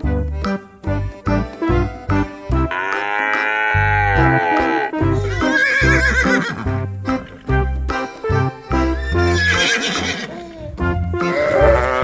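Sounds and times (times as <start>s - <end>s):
background music with bass line: 0.0s - 12.0s
horse whinnying: 2.7s - 7.4s, 9.0s - 10.4s, 11.2s - 12.0s.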